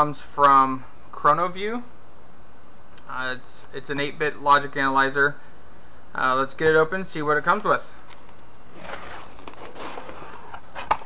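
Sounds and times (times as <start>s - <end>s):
cardboard flaps rustling and scraping: 8.1s - 11.0s.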